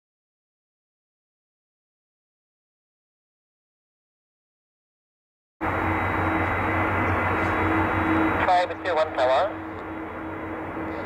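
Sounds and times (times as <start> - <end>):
airliner rumble and hiss: 5.6 - 11.0.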